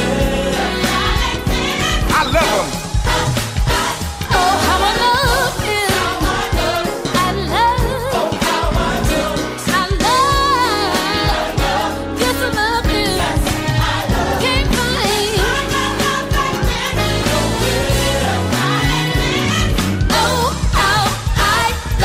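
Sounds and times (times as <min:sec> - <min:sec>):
gospel band with bass and beat: 0:00.0 - 0:22.0.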